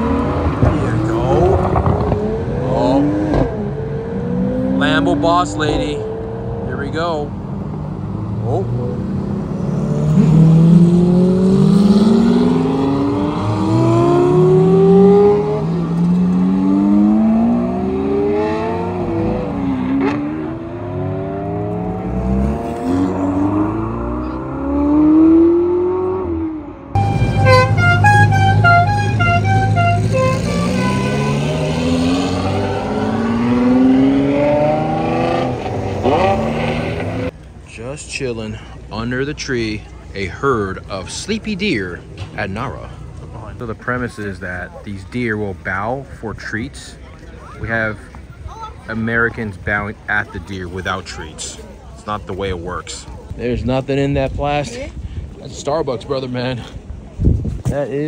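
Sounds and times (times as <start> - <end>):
car pulling away: 0.0 - 44.7
car engines accelerating hard: 0.0 - 54.8.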